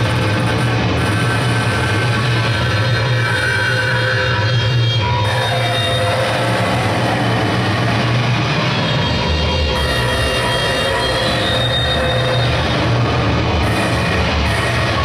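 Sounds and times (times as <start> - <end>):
synthesizer noise wall: 0.0 - 15.0.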